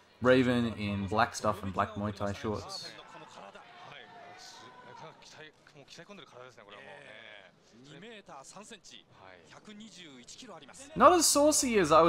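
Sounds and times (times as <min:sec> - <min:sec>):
man speaking: 0:00.2 - 0:02.9, 0:10.9 - 0:12.0.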